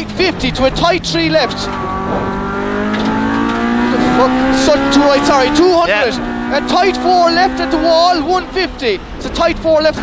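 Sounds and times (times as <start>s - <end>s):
car engine revving: 0.0s - 10.0s.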